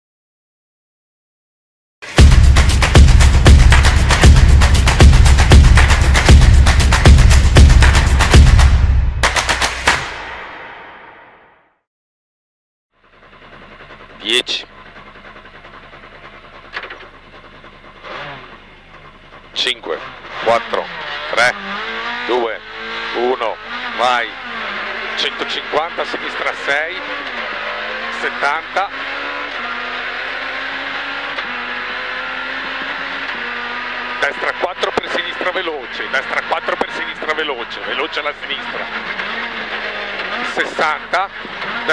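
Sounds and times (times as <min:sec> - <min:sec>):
rally car engine idling: 0:13.0 - 0:41.9.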